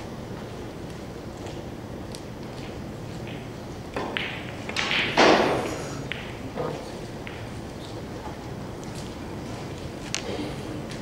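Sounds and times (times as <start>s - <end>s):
balls clicking together: 2.1s - 5.2s, 6.0s - 6.6s
cue tip striking ball: 3.2s - 8.0s.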